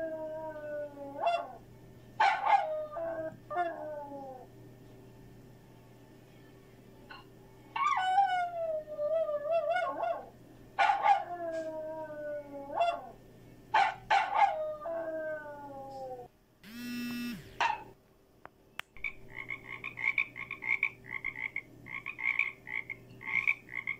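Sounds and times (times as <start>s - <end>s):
dog howling: 0.0s - 1.6s, 2.2s - 4.5s, 7.8s - 13.2s, 14.1s - 16.3s
frog croaking: 19.0s - 23.9s.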